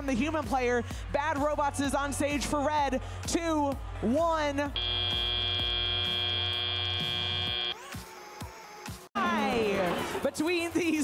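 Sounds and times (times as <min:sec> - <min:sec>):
high buzzer tone: 0:04.8 - 0:07.8.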